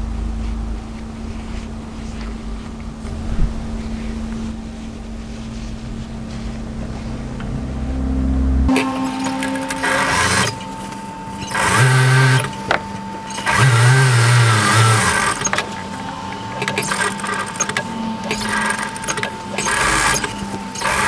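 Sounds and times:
sewing machine humming: 4.6s - 21.0s
sewing machine stitching: 8.7s - 10.8s, 11.4s - 15.9s, 16.6s - 21.0s.

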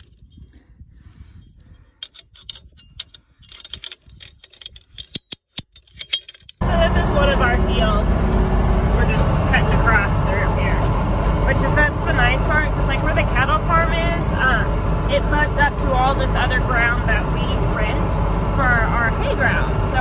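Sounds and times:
tractor engine running: 0.0s - 20.0s
ratchet strainer metal clicks: 2.0s - 6.6s.

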